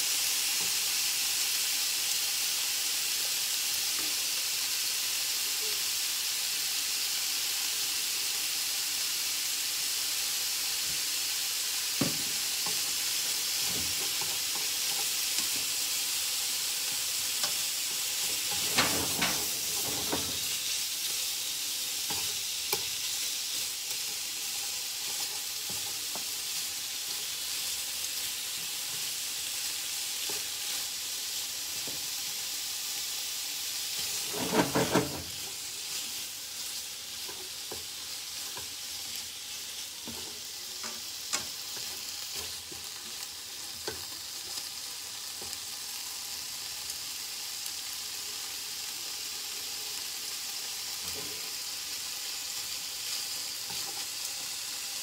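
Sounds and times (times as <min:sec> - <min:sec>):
meat sizzling in frying pan: 0:00.0 - 0:55.0.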